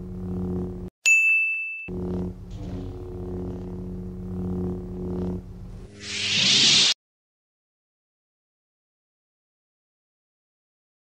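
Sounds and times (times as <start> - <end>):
lightsaber electronic hum: 0.0 - 0.9, 1.9 - 7.0
bright ringing ding: 1.0 - 1.9.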